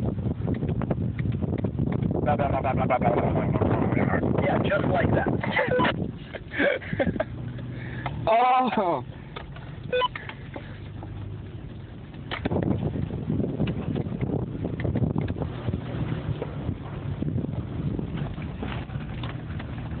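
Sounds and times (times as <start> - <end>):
vehicle engine and road noise: 0.0 - 20.0.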